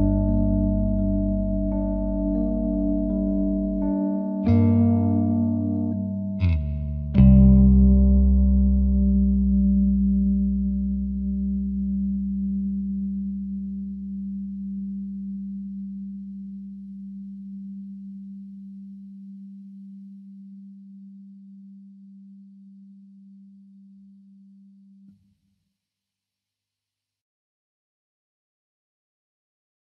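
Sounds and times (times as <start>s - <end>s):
deep drone: 0.0s - 18.6s
sustained low tone: 0.0s - 25.2s.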